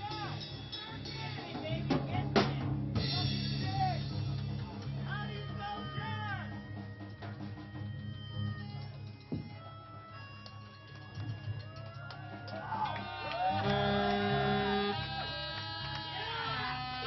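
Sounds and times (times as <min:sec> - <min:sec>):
hand-held horn sliding notes: 0:13.5 - 0:15.2
low amplifier drone: 0:13.5 - 0:17.0.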